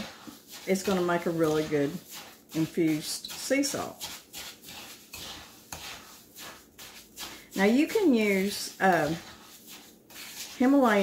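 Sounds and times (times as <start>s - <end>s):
spoon scraping salt in bowl: 0.0s - 11.0s.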